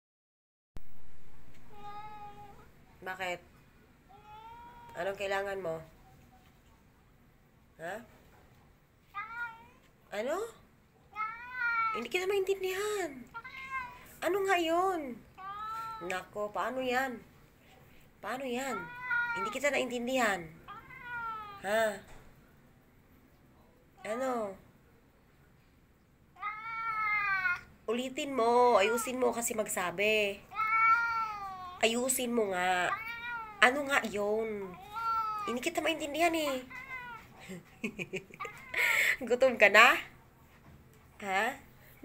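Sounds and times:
cat meowing: 1.7s - 2.7s, 4.1s - 5.1s, 11.2s - 12.0s, 13.3s - 14.2s, 15.4s - 16.1s, 18.7s - 19.9s, 20.5s - 21.7s, 26.4s - 27.7s, 30.5s - 31.8s, 32.8s - 34.0s, 34.6s - 37.4s.

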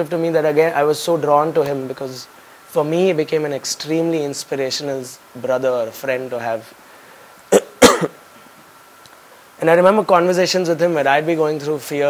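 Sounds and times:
man coughing: 7.5s - 8.2s.

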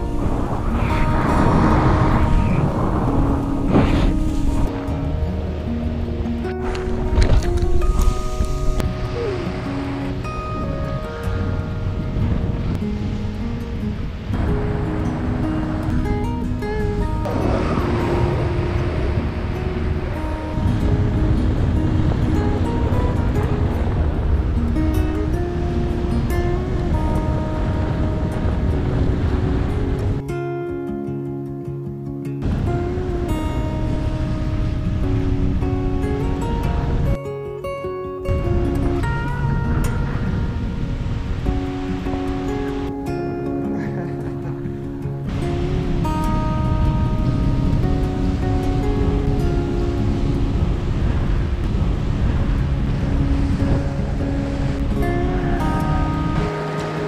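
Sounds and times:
steady rushing noise: 0.0s - 30.2s, 32.4s - 37.2s, 38.2s - 57.0s
fingerstyle acoustic guitar: 0.0s - 57.0s.

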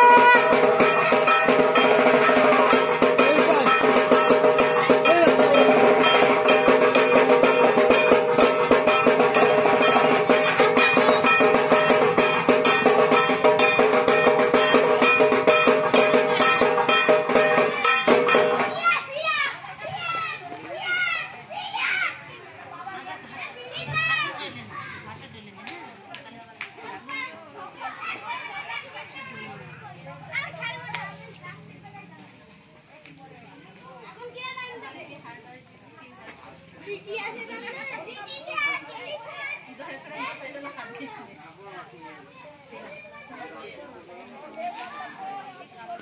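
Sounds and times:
music: 0.0s - 19.0s
voices chattering: 0.0s - 46.0s
women and children talking: 0.0s - 46.0s.

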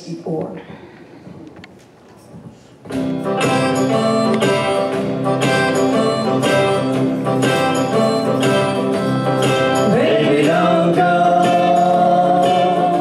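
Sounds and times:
guitar strumming: 2.9s - 13.0s
upright bass: 3.0s - 13.0s.

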